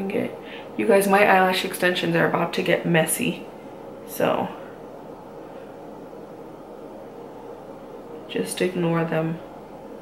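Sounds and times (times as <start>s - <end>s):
low room noise hiss: 0.0s - 10.0s.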